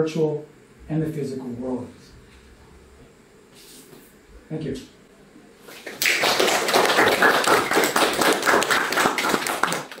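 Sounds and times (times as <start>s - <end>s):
audience applauding: 5.9s - 10.0s.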